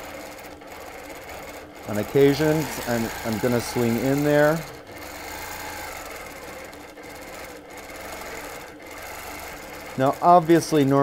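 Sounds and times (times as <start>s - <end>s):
quilting machine stitching: 0.0s - 11.0s.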